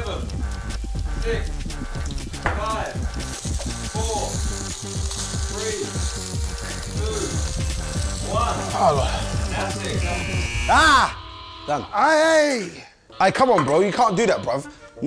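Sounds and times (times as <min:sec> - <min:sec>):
background music with bass line: 0:00.0 - 0:11.2
food sizzling in frying pans: 0:00.0 - 0:11.5.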